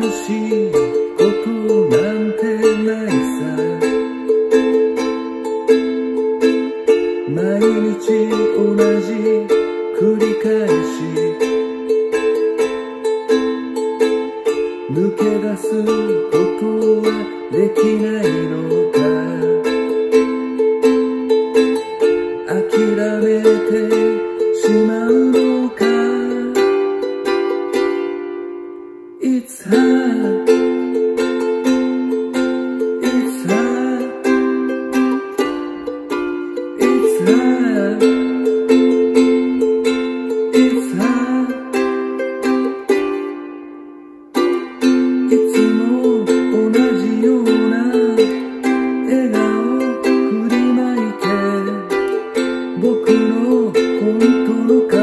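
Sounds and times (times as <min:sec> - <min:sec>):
ukulele strumming: 0:00.0 - 0:55.0.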